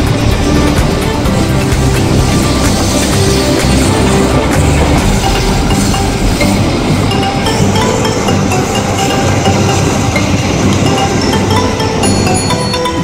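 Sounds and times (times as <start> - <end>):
background music: 0.0 - 13.0
passing train rumble: 0.0 - 13.0.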